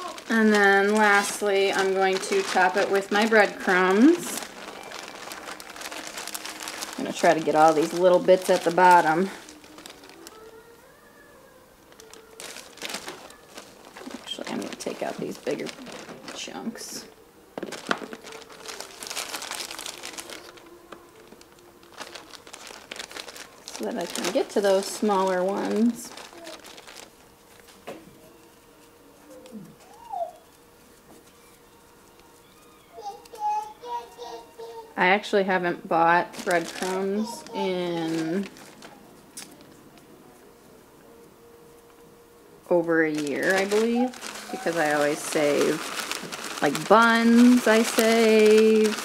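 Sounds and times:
plastic bag crinkling: 0:00.0 - 0:34.4, 0:35.2 - 0:40.4, 0:42.6 - 0:49.0
child singing: 0:09.5 - 0:13.6.

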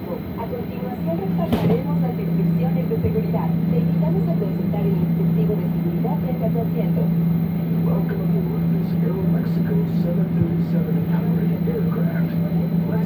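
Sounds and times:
aircraft cabin hum: 0:00.0 - 0:13.0
passengers talking: 0:00.0 - 0:13.0.

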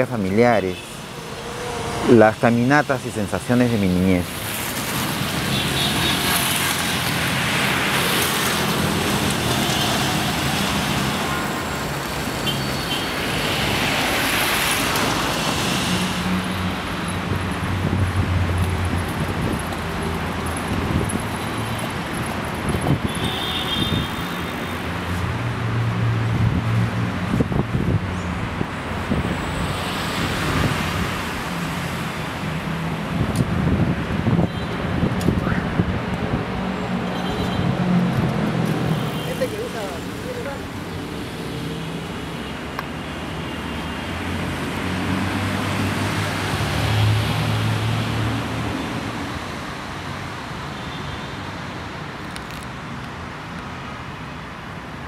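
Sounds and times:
cars passing: 0:00.0 - 0:55.0.

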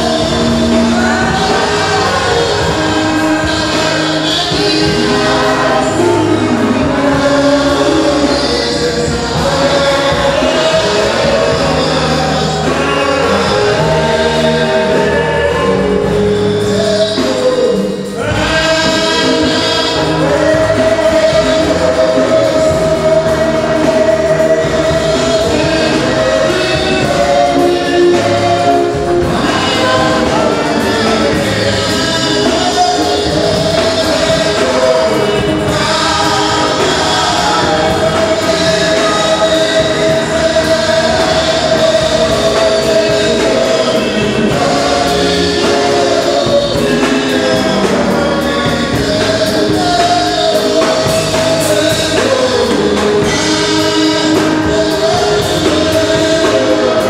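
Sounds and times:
band playing steady beat: 0:00.0 - 0:57.0
congregation singing: 0:00.0 - 0:57.0.

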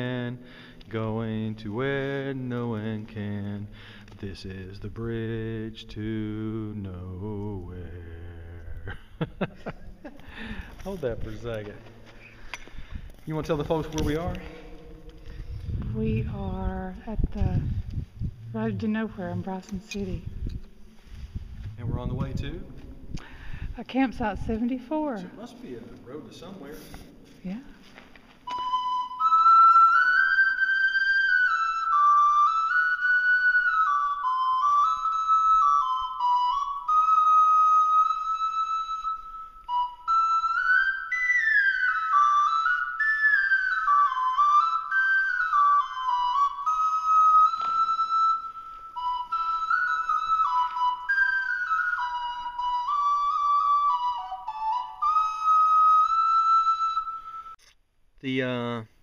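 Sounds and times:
ocarina melody: 0:10.1 - 0:57.7
flute-like high note: 0:28.4 - 0:57.6.

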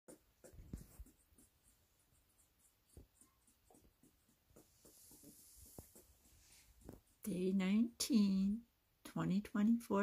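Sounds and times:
scratchy rustling: 0:00.1 - 0:07.3.

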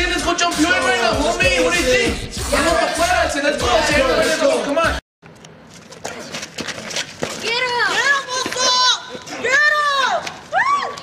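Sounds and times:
people shouting: 0:00.6 - 0:05.0
knocks and steps on pavement: 0:05.2 - 0:11.0.

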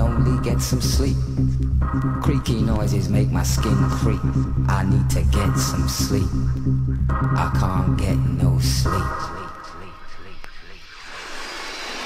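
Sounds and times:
techno music: 0:00.0 - 0:11.0
noise sweep: 0:00.0 - 0:12.0.

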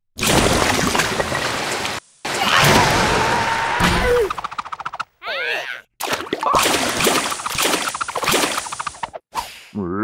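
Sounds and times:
cartoon creature cry: 0:05.2 - 0:05.9.

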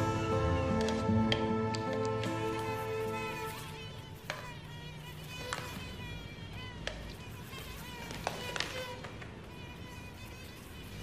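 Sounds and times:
mosquito whining: 0:00.0 - 0:11.0.

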